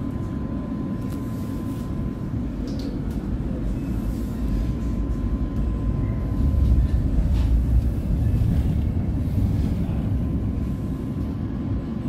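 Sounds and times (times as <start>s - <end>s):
train wheels rumbling on rail: 2.9s - 12.0s.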